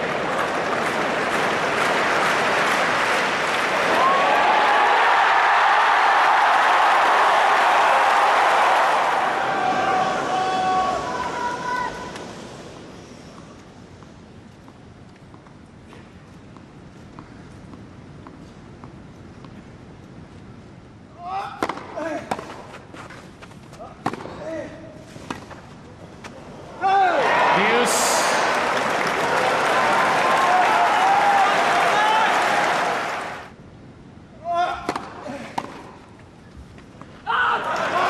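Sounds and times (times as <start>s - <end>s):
crowd cheering and applauding: 0.0s - 11.4s, 27.2s - 33.5s, 37.6s - 38.0s
racket striking ball: 21.6s - 22.6s, 24.0s - 24.4s, 34.8s - 36.0s.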